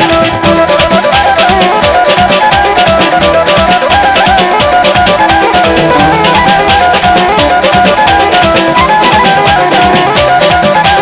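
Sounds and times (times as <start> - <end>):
driving drum beat: 0.0 - 11.0
fast synthesizer lead melody: 4.8 - 10.3.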